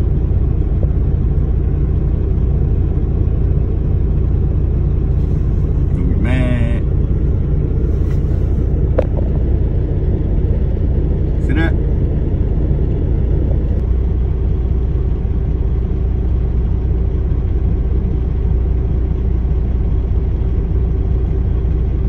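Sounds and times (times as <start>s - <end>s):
diesel truck engine idling: 0.0s - 22.0s.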